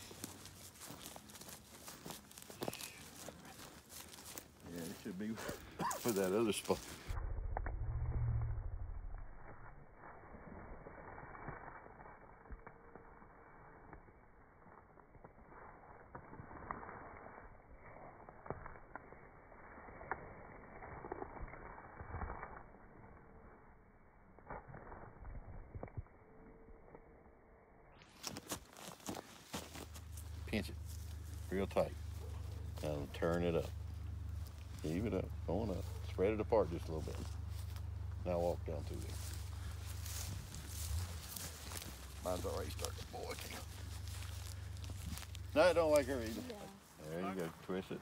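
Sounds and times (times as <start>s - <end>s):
footsteps through dry grass: 0.0s - 7.2s, 9.4s - 23.6s, 28.0s - 48.0s
low rumble: 6.7s - 13.4s, 29.8s - 46.6s.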